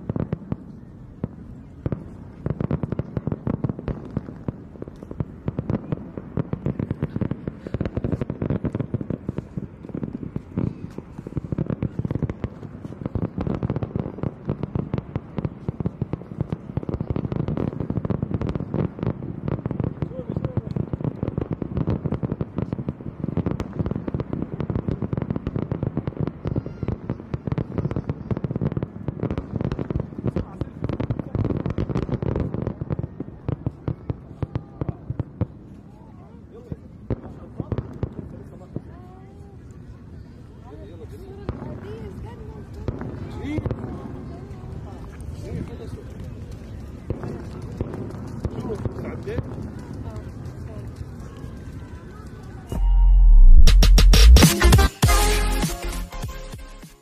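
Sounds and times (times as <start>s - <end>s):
fireworks bangs and crackles: 0.0s - 52.8s, 53.4s - 57.0s
crowd voices: 0.0s - 57.0s
low rumble: 52.7s - 54.4s.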